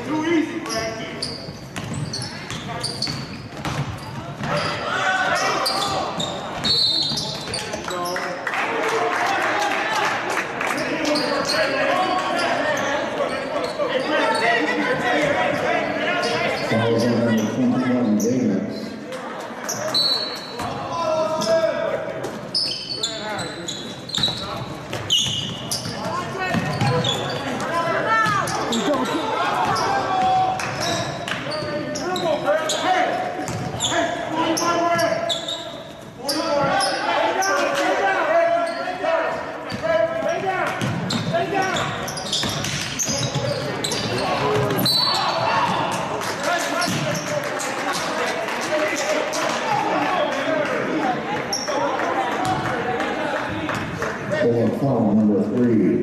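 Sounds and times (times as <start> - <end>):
sneakers squeaking: 0.5 - 8.3, 10.8 - 37.9, 38.5 - 48.2, 51.3 - 52.8
people calling out: 26.0 - 31.2.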